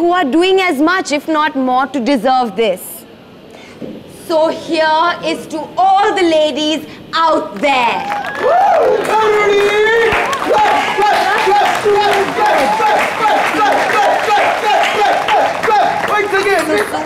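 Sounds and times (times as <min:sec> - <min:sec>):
person cheering: 0:08.1 - 0:16.7
hand claps: 0:08.1 - 0:17.0.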